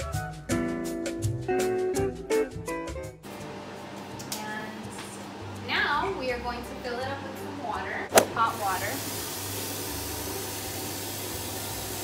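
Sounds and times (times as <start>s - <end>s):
sharp click: 8.1s - 8.3s
faucet water streaming into saucepan: 8.3s - 12.0s.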